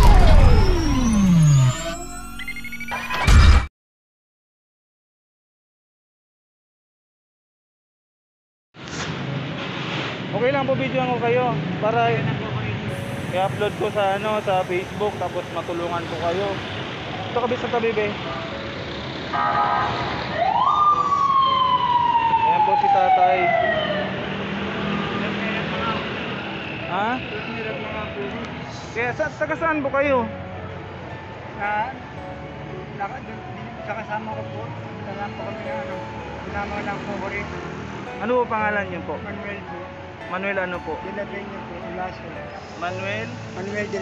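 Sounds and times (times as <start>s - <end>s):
loud low synth hit: 0.0s - 2.4s
siren wailing: 0.0s - 3.5s, 12.9s - 17.3s, 20.3s - 24.6s
electronic tone sliding down: 0.0s - 3.7s, 12.9s - 17.3s
street noise: 8.8s - 44.0s
faint rising whistle: 12.9s - 16.8s.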